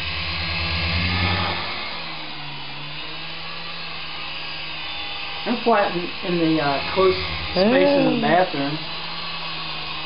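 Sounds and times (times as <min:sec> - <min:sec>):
toy helicopter rotors whirring: 0:00.0 - 0:10.0.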